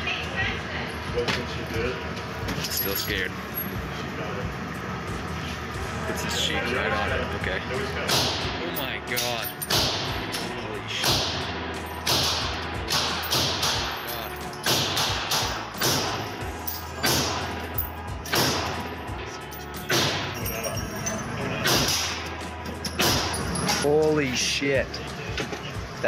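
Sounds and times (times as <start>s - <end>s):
rifle shots echoing indoors: 12.0s - 14.0s, 14.6s - 16.2s.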